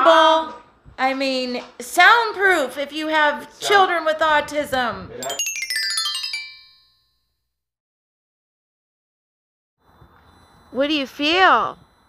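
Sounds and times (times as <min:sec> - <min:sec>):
rising synthesized chime: 0:05.2 - 0:07.1.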